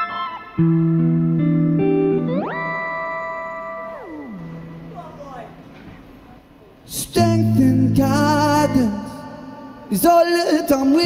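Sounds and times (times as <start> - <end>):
electric guitar note sliding down: 0.0 - 5.3.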